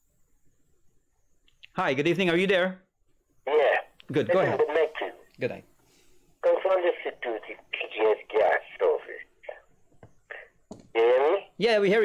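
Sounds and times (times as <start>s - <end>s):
person speaking over a telephone: 3.4s - 5.6s, 6.4s - 12.0s.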